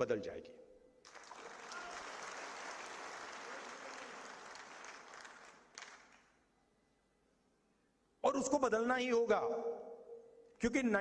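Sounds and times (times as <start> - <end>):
audience applauding: 1.0 - 6.4.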